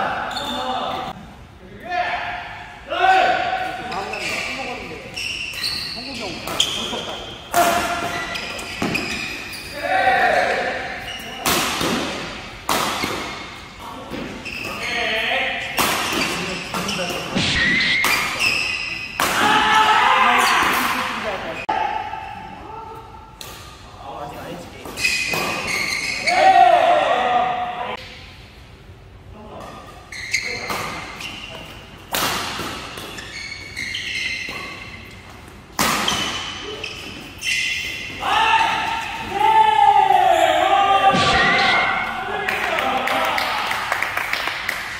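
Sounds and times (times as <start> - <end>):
shoes squeaking on court: 3.9 - 9.8, 10.9 - 11.4, 13.0 - 15.2, 16.0 - 19.2, 24.8 - 26.4, 29.8 - 32.0, 32.8 - 38.2
rackets hitting shuttlecock: 15.7 - 19.7, 35.7 - 36.6.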